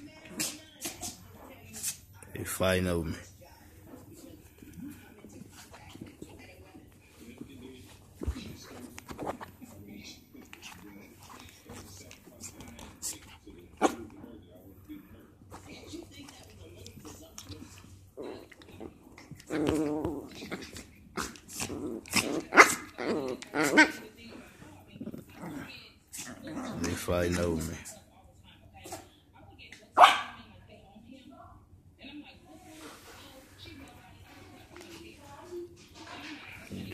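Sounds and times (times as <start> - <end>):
puppy barking: 30.0 - 30.4.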